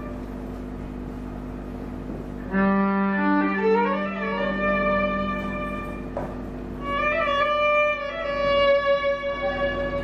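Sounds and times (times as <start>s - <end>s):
solo violin playing: 2.5s - 6.1s, 6.8s - 10.0s.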